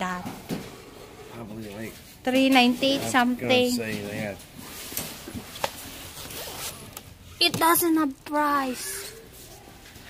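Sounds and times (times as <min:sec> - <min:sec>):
faint rustling handling noise: 0:01.4 - 0:10.0.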